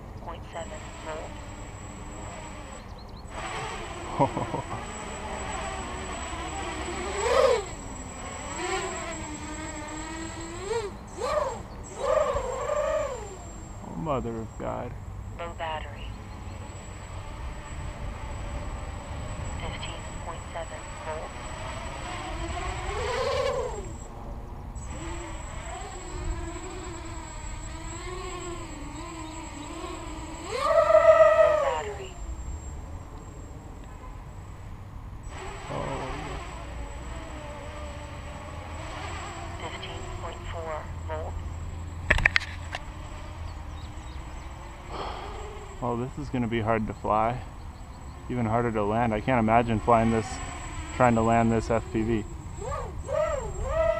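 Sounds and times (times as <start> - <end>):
quadcopter propellers whining: 0.0 - 53.9
sharp click: 42.1 - 42.8.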